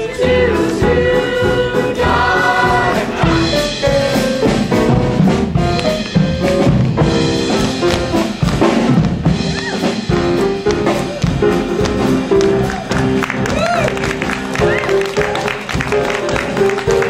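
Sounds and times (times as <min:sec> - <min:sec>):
drum kit: 0:00.0 - 0:17.0
jazzy show music: 0:00.0 - 0:17.0.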